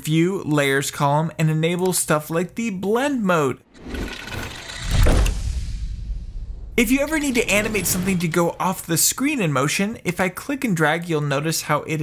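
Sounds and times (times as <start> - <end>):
whoosh into deep boom: 4.7 - 9.4.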